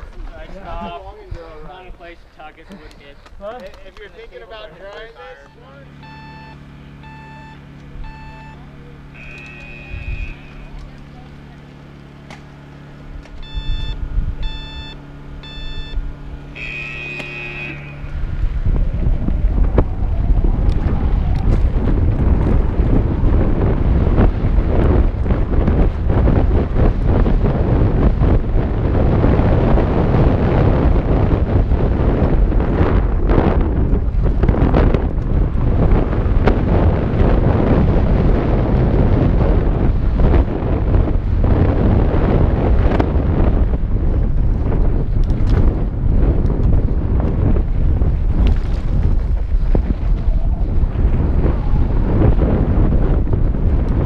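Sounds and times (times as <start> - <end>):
electronic timer beeps: 5.4 - 10.4, 13.4 - 16.0
wind rushing over camera: 13.1 - 54.0
bike rattling over dirt trail: 16.6 - 54.0.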